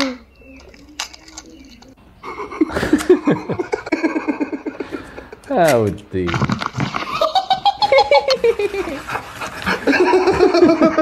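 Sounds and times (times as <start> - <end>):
person laughing breathily: 2.3 - 5.5, 9.7 - 11.0.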